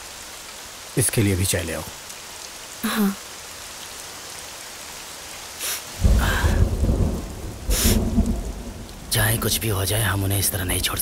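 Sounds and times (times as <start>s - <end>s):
steady rain: 0.0s - 11.0s
rolling thunder: 6.0s - 9.6s.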